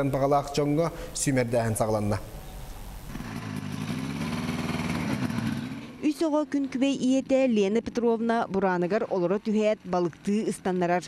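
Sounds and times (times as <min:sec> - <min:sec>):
snowmobile engine pulling away: 0:03.1 - 0:06.1.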